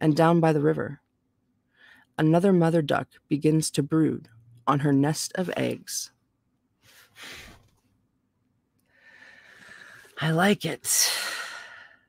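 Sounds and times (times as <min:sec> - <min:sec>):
woman breathing in softly: 0:08.9 - 0:10.2.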